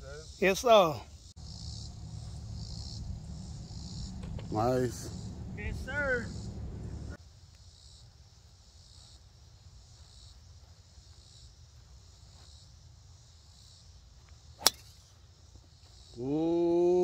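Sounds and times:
golf driver striking ball: 14.6s - 14.9s.

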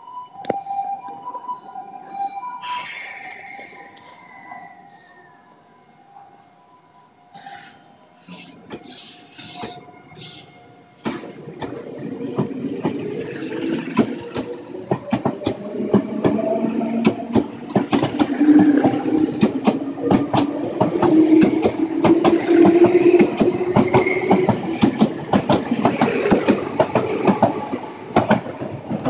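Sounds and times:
train wheels clacking over rail joints: 11.0s - 29.0s.

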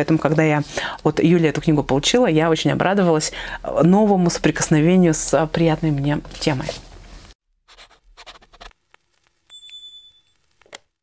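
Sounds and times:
scratchy writing sound effect: 7.7s - 8.8s
short high beep: 9.5s - 10.4s.

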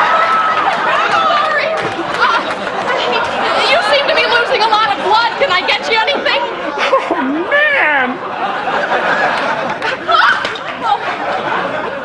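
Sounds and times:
women shrieking and exclaiming: 0.0s - 6.7s, 7.3s - 8.2s, 9.9s - 11.2s.

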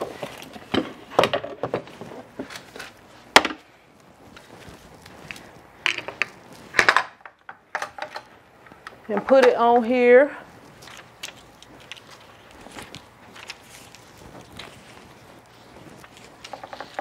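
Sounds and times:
hard parts knocking and clattering: 5.9s - 8.3s, 16.4s - 17.0s.

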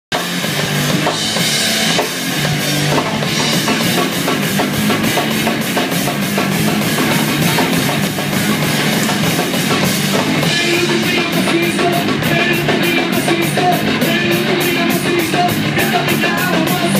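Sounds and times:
driving drum kit beat: 0.1s - 16.9s
electric guitars: 0.1s - 16.9s.

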